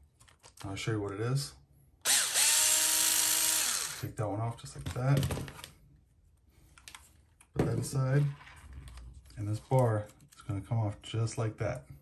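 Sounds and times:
person speaking: 7.5s - 12.0s.

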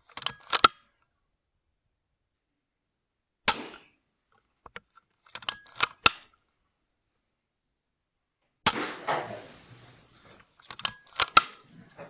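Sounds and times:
air rifle shots: 3.5s - 4.0s, 8.7s - 9.6s.

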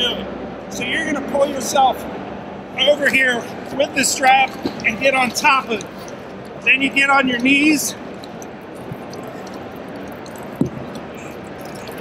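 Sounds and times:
water sloshing and dripping: 3.6s - 12.0s.

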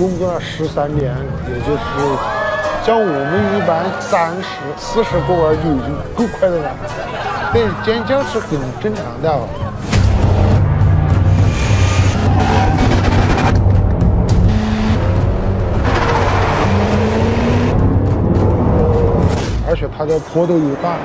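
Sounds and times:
background music with bass line: 0.0s - 20.0s.

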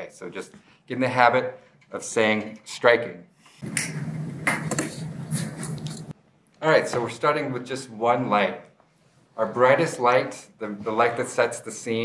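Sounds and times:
steady low hum: 3.6s - 6.6s.

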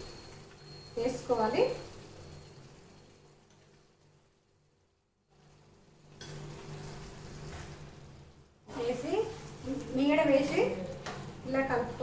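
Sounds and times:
curry simmering in a pan: 0.0s - 12.0s.

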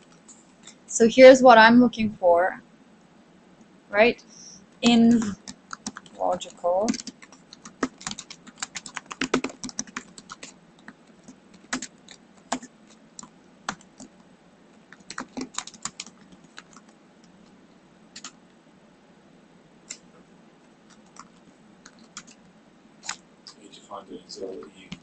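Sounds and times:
typing on computer keyboard: 5.1s - 14.1s, 14.9s - 17.0s, 18.2s - 18.4s, 20.9s - 22.4s.

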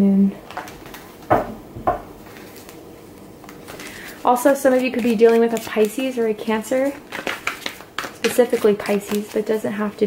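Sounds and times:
cards rustling: 2.2s - 10.0s.

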